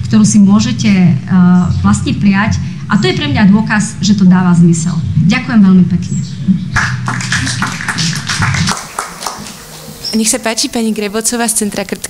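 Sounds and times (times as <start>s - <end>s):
people clapping: 6.8s - 9.8s.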